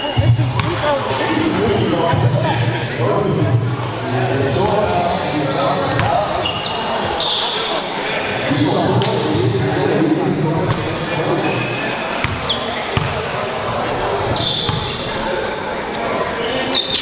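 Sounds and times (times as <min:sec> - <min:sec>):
talking voices: 0:00.0 - 0:16.7
sneaker squeaks: 0:06.0 - 0:09.8, 0:10.7 - 0:15.2, 0:16.4 - 0:17.0.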